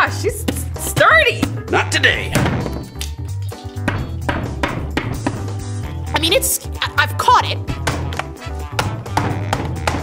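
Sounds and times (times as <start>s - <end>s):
music with steady bass beat: 7.7s - 10.0s.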